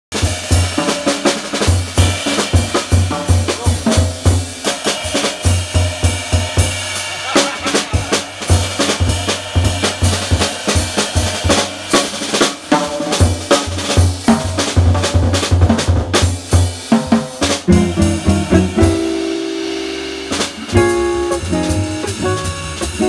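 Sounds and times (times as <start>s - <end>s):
drum kit: 0.1s - 23.0s
jazz guitar soloing: 17.5s - 23.0s
walking upright bass: 17.6s - 23.0s.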